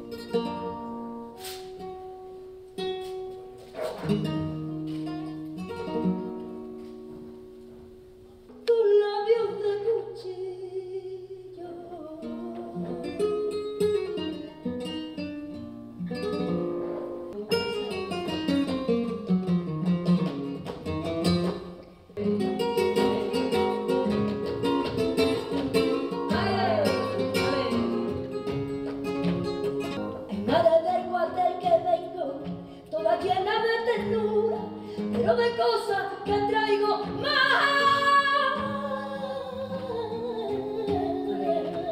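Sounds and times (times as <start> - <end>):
woman flamenco singing: 0.0 - 16.8, 17.5 - 41.9
flamenco acoustic guitar: 0.0 - 41.9.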